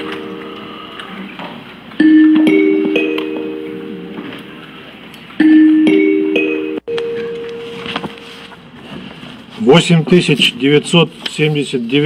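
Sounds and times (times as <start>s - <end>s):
three-note chime: 0.0s - 1.0s, 2.0s - 4.8s, 5.4s - 8.4s.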